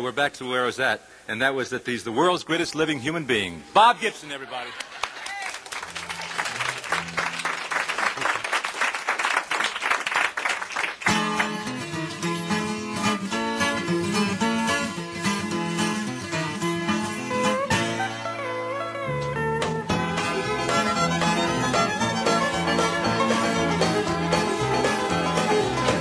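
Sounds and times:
audience applauding: 4.5 - 11.9
acoustic string band playing: 11.4 - 26.0.

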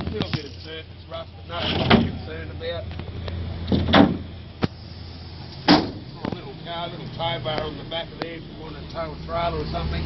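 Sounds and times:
tailgate slamming shut: 1.6 - 2.3, 3.6 - 4.8, 5.6 - 6.1.

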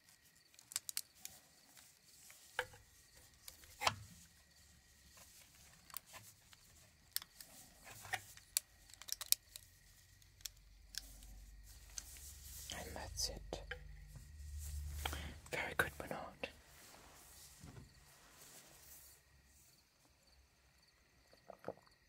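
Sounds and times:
plastic parts clicking: 0.5 - 1.4, 2.5 - 4.2, 5.4 - 12.2
light rubbing: 1.0 - 19.7.

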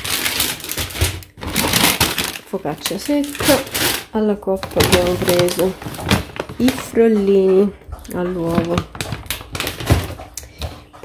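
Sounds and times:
plastic bag rustling: 0.0 - 10.8
packages clicking and knocking: 0.0 - 11.0.

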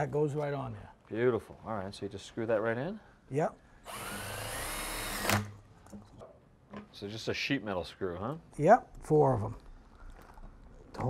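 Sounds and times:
cordless drill motor whine: 3.9 - 5.5.

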